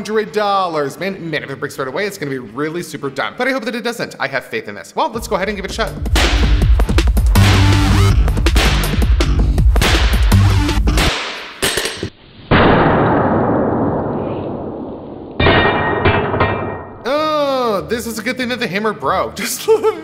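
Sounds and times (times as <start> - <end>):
booming impact effect: 5.2 - 9.2, 12.5 - 17.0
music with heavy beat: 5.2 - 12.1.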